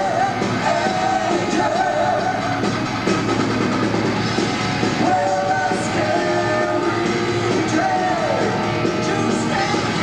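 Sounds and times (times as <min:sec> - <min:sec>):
metal band playing live: 0:00.0 - 0:10.0.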